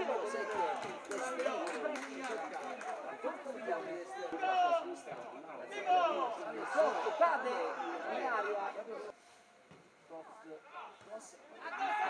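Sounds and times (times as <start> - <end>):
voices talking and calling out: 0.0 - 9.2.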